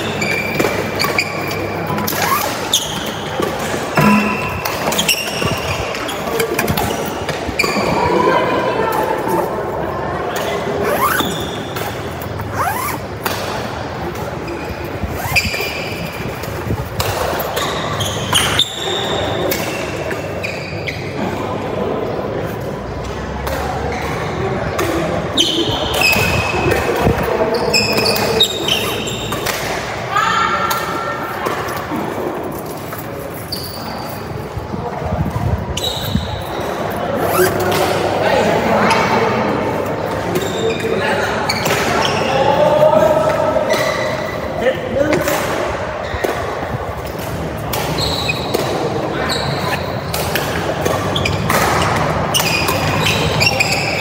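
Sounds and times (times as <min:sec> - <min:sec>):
shoes squeaking on court: 0:00.0 - 0:08.2, 0:10.3 - 0:21.2, 0:25.4 - 0:29.7, 0:32.9 - 0:34.4, 0:35.7 - 0:38.0, 0:40.2 - 0:42.4, 0:46.0 - 0:54.0
racket hitting shuttlecock: 0:03.4 - 0:05.6.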